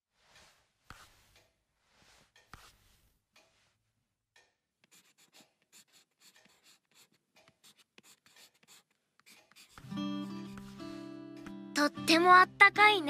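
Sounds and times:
pencil scratching on paper: 0.4 - 1.4, 2.0 - 3.1, 4.8 - 10.8.

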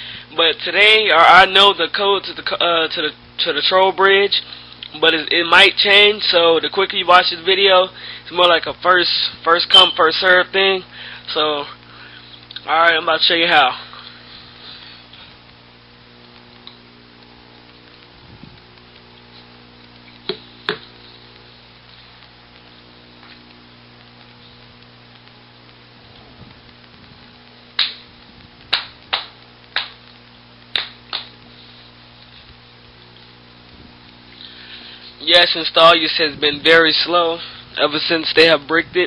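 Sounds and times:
electrical mains hum: 0.0 - 39.0.

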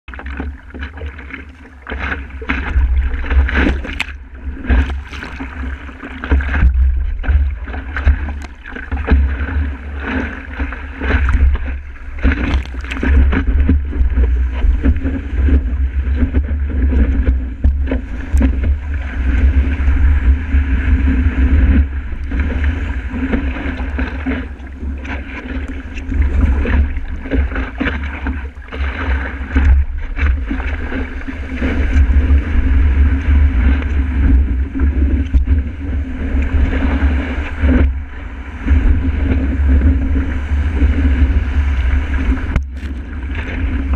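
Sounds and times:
breaking surf splashing: 0.2 - 43.9
wind buffeting microphone: 0.5 - 43.9.

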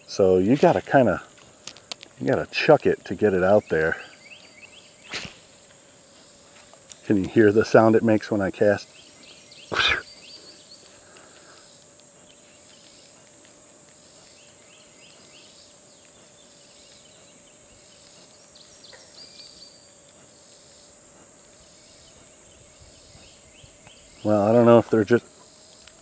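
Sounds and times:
insect chirring: 0.0 - 26.0.

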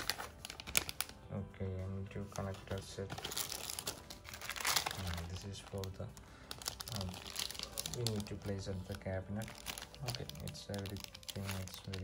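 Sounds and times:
plastic bags crinkling: 0.0 - 1.2, 2.2 - 12.0.

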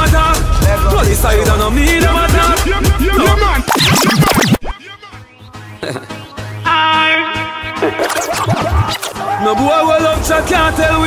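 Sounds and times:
record scratching: 2.4 - 4.8, 7.7 - 9.4.

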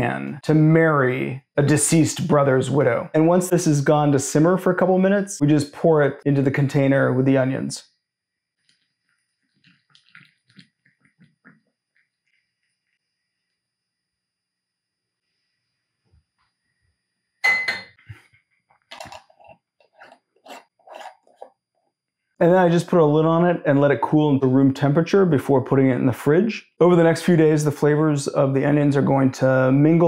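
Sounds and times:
glass jar knocks: 17.4 - 18.0.

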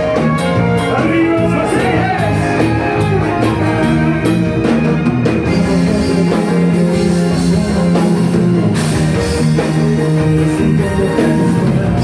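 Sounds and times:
live band playing loud music: 0.0 - 12.0.

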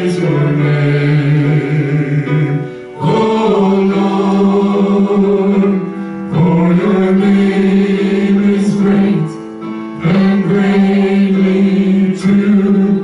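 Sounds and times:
people singing worship chorus: 0.0 - 13.0.

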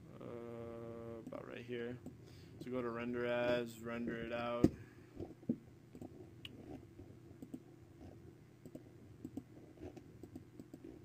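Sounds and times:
low steady hum: 0.0 - 11.0
computer mouse and keyboard clicks: 5.2 - 6.8, 7.4 - 11.0.

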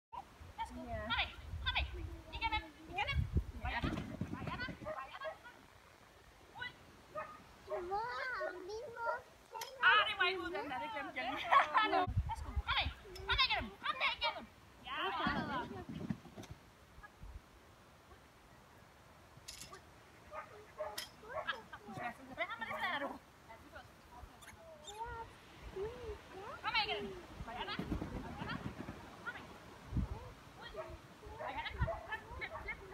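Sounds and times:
dog barking and yelping: 20.3 - 21.7, 30.7 - 32.8.

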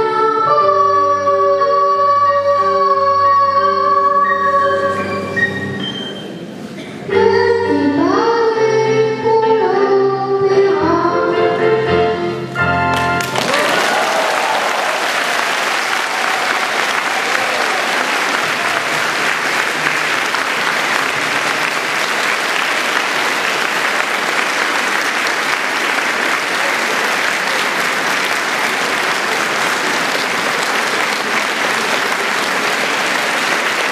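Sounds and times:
audience applauding: 12.9 - 33.9.

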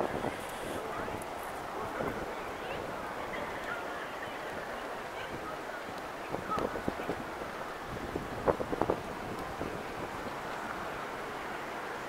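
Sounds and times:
city street noise: 0.0 - 12.0.

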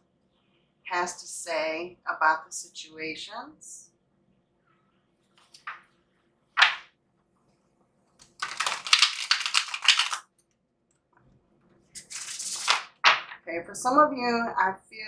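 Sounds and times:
cards riffle shuffle: 8.2 - 10.2, 12.0 - 13.4
cards swishing: 12.0 - 13.4.

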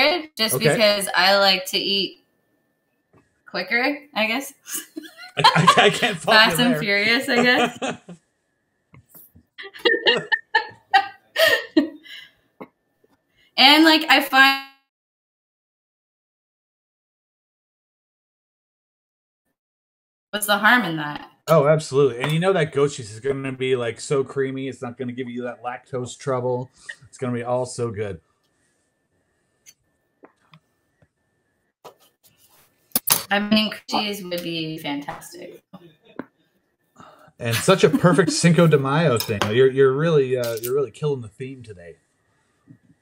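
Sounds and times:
person laughing: 4.7 - 8.2, 9.6 - 12.0, 37.4 - 39.2.

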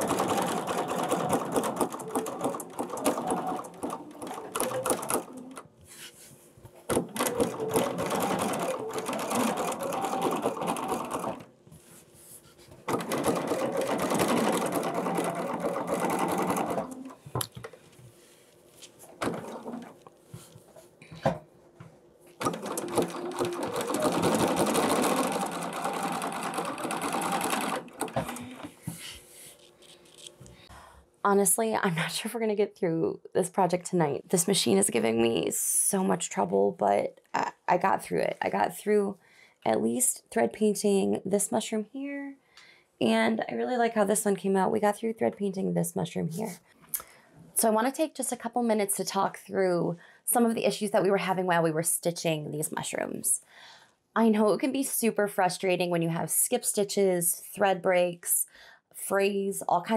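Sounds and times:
sewing machine stitching: 0.0 - 5.6, 6.9 - 11.5, 12.8 - 17.2, 19.2 - 20.0, 22.4 - 28.8.

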